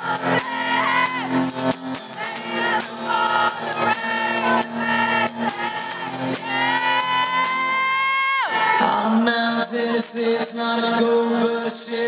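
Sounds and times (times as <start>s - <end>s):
person singing: 0.0s - 12.0s
strummed acoustic guitar: 0.0s - 12.0s.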